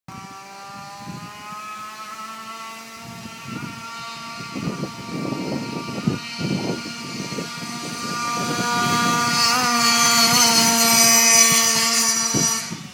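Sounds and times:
scooter two-stroke engine buzzing: 0:00.1 - 0:12.9.

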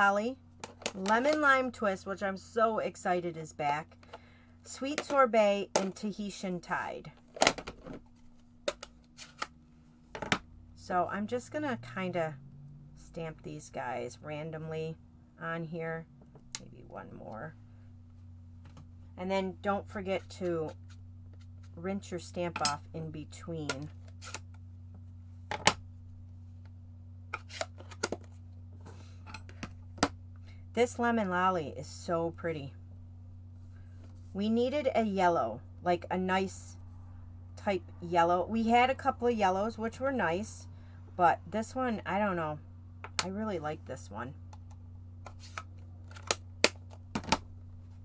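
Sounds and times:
low steady hum: 0:00.0 - 0:48.0
plastic cases clicking and tapping: 0:46.1 - 0:47.5.

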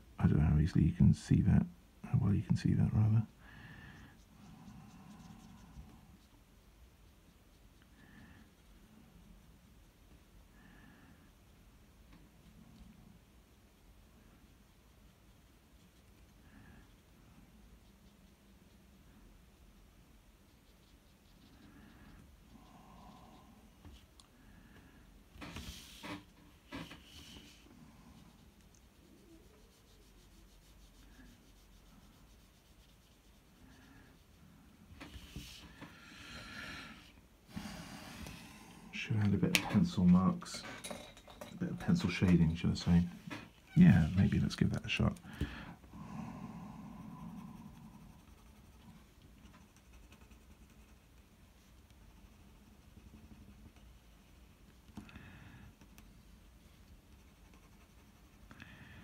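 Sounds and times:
faint brush pen rubbing on paper: 0:04.0 - 0:10.1, 0:13.2 - 0:24.2, 0:25.4 - 0:35.9, 0:41.8 - 0:45.2, 0:47.2 - 0:55.0, 0:55.6 - 0:58.5
paper rubbing and sliding: 0:25.4 - 0:27.7, 0:43.8 - 0:44.5.

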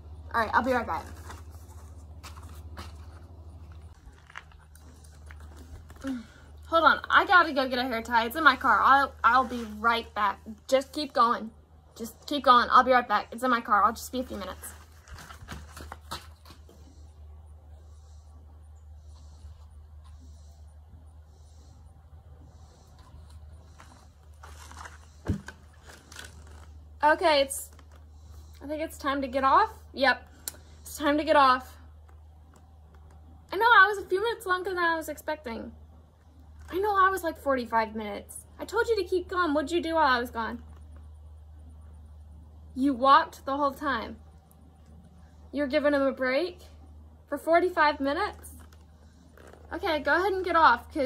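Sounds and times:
steady low hum: 0:00.0 - 0:51.0
wooden chair scuffs and creaks: 0:23.7 - 0:26.8, 0:48.4 - 0:49.7.

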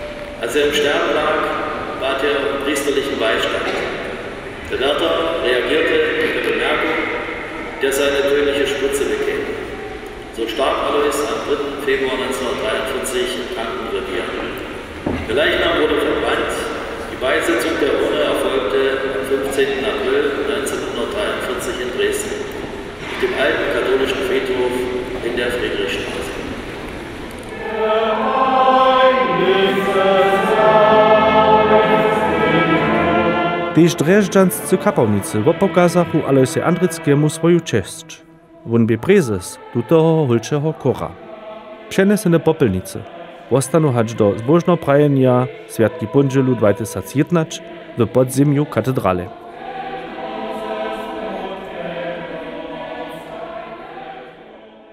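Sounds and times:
boys' choir singing: 0:00.0 - 0:26.6, 0:27.5 - 0:54.9.

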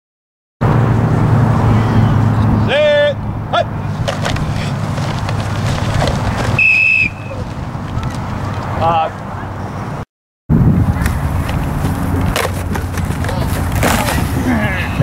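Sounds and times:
short high whistle blast: 0:06.6 - 0:07.4.

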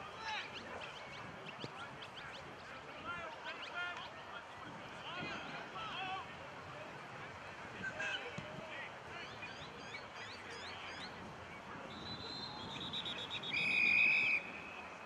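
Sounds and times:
distant indistinct voices: 0:00.0 - 0:15.0.

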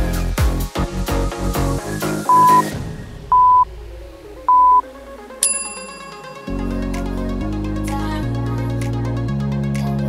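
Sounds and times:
electronic music: 0:00.0 - 0:02.9, 0:03.6 - 0:09.6
timer beeps: 0:02.3 - 0:02.7, 0:03.3 - 0:03.6, 0:04.5 - 0:04.8
bright ringing chime: 0:05.4 - 0:07.1.

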